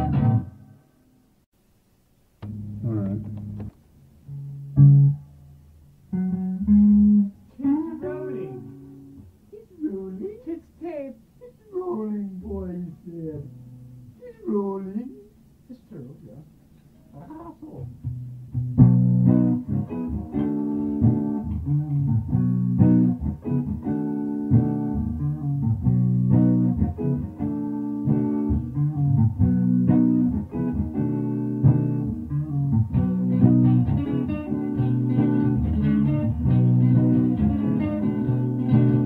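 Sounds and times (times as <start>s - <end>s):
guitars strumming chords: 0.0s - 0.8s, 2.4s - 9.5s, 17.8s - 39.0s
person speaking: 2.4s - 3.6s, 9.5s - 13.6s, 14.2s - 18.0s.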